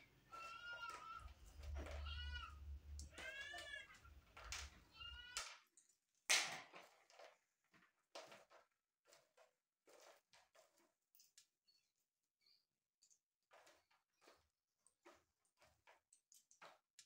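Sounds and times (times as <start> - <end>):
cat meowing: 0.3 - 4.0.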